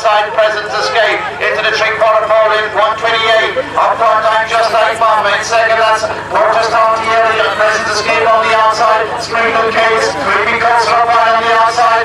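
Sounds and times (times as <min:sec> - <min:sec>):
man calling a race quickly: 0:00.0 - 0:12.0.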